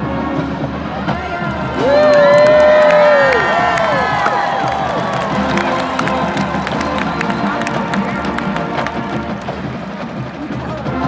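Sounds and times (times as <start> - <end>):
marching band brass chord: 0.0 - 11.0
stadium crowd cheering: 0.3 - 11.0.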